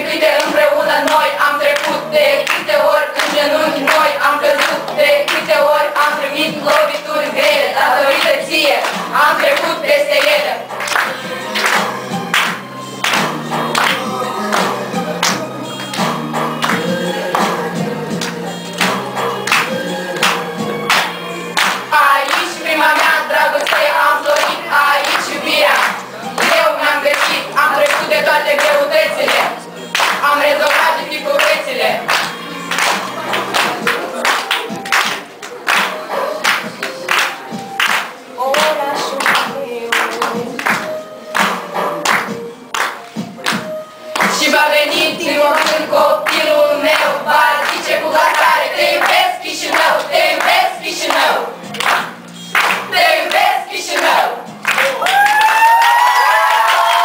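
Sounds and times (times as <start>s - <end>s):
group of voices singing: 0.0s - 42.6s, 43.4s - 54.8s
hand clapping: 0.4s - 5.4s, 6.7s - 44.5s, 45.5s - 57.0s
audience applauding: 10.8s - 16.0s, 18.2s - 40.8s, 45.6s - 57.0s
drawn-out cheer: 54.7s - 57.0s.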